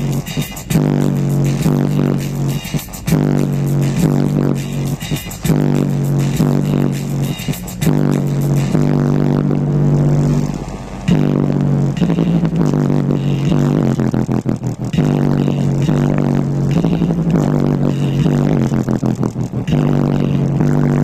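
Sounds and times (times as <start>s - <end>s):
bass-heavy music from car stereo: 0.0s - 21.0s.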